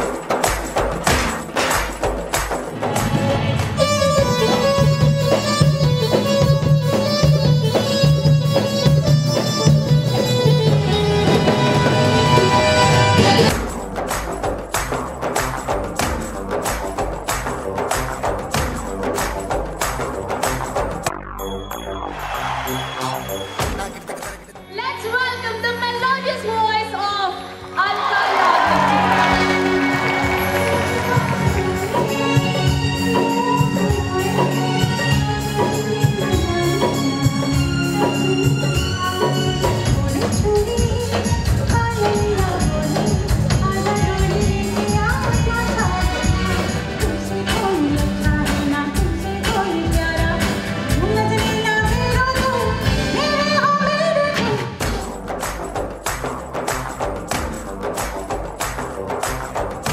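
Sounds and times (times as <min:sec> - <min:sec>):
drum hits: 0:00.0 - 0:04.8, 0:23.6 - 0:24.6
live band playing: 0:00.0 - 0:59.9
woman singing amplified: 0:30.2 - 0:35.2, 0:38.2 - 0:54.9.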